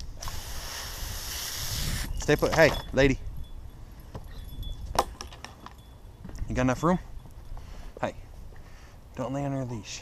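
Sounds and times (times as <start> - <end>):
dog collar clinks and jingles: 2.2 - 7.6.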